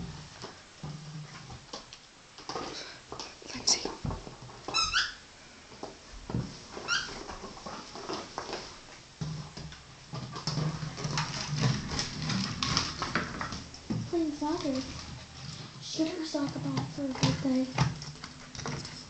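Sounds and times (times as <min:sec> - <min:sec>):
dog squeaks: 0:04.7 - 0:05.2
dog claws clicking and scrabbling: 0:09.6 - 0:19.0.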